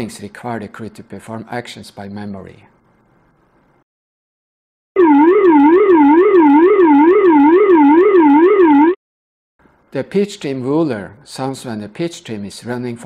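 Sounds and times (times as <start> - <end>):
warbling alert tone: 5.0 - 9.0.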